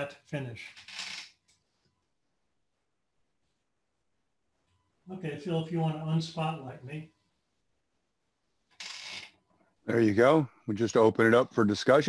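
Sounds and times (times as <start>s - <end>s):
man speaking: 5.0s - 7.2s, 9.8s - 12.0s.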